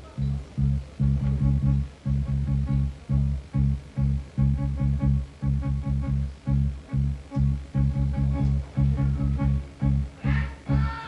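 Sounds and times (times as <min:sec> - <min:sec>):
band playing chugging riff: 0:00.0 - 0:11.0.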